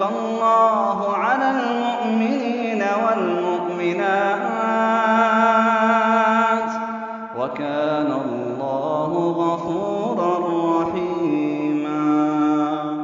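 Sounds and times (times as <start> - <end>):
man chanting melodic recitation: 0.0 - 13.0.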